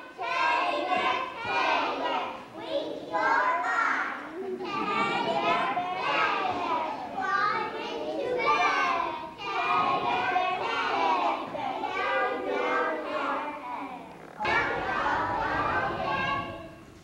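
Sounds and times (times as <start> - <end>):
children singing in unison: 0.0 - 13.7, 14.4 - 17.0.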